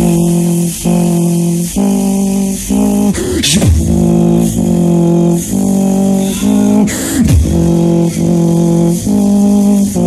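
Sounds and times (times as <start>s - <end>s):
beatboxing through a loud pa: 0.0s - 10.0s.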